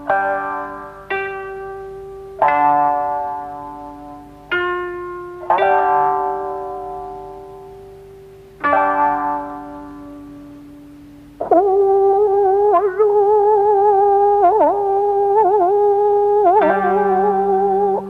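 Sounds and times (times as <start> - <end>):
plucked string notes: 0.0 - 18.0
person singing long held note: 11.4 - 18.0.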